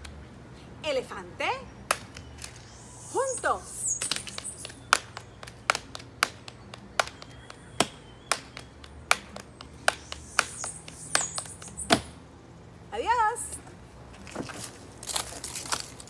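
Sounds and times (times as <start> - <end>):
people clapping a rhythm: 4.3 - 11.4.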